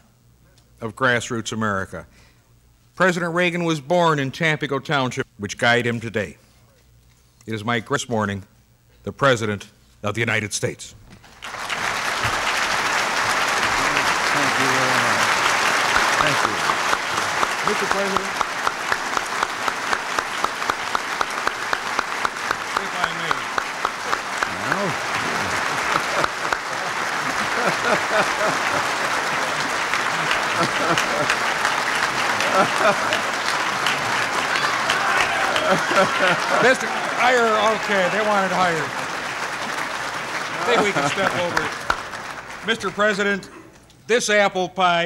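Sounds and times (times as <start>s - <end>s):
rhythmic clapping: 11.2s - 43.4s
large audience applauding: 11.2s - 43.5s.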